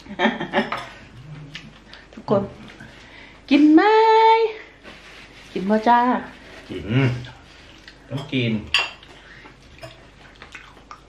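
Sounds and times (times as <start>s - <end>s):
cutlery and dishes clinking: 8.1s - 9.1s.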